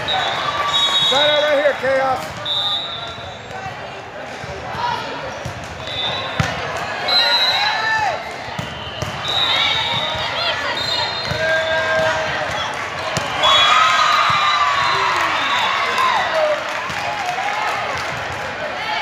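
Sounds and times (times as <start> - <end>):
voices chattering: 0.0 - 13.6
volleyball hits: 4.6 - 7.0, 7.8 - 15.5.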